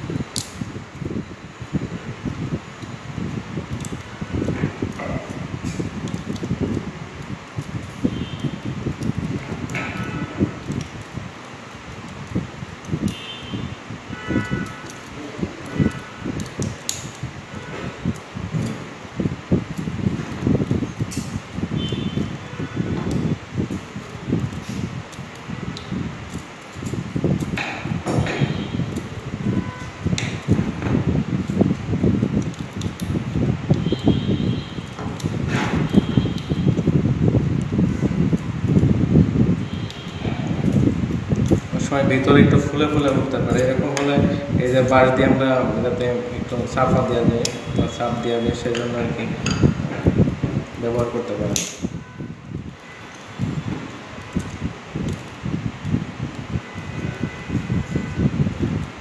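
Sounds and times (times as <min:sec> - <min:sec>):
wire scraping and rustling: 0:00.0 - 0:59.0.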